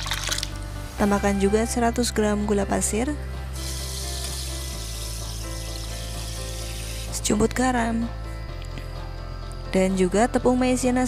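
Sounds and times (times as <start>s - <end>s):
sugar pouring into liquid: 0.0s - 0.6s, 3.6s - 7.2s
soft background music: 0.0s - 11.0s.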